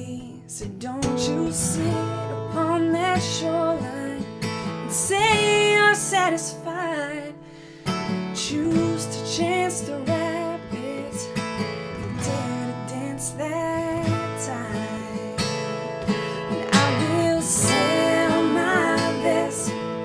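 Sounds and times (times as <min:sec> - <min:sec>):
strummed acoustic guitar: 0:00.0 - 0:20.0
woman singing country ballad: 0:00.0 - 0:20.0.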